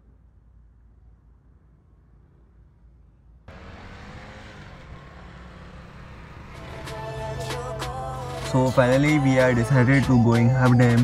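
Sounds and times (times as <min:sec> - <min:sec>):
motorcycle engines running: 0:03.5 - 0:08.4
tyre and road noise: 0:03.5 - 0:09.6.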